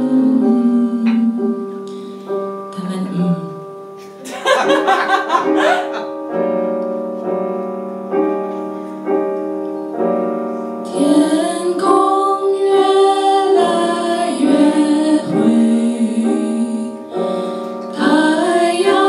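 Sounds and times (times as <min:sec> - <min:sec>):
woman singing: 0:00.0 - 0:02.0, 0:02.7 - 0:03.7, 0:10.9 - 0:17.2, 0:17.9 - 0:19.0
keyboard piano chords: 0:00.0 - 0:19.0.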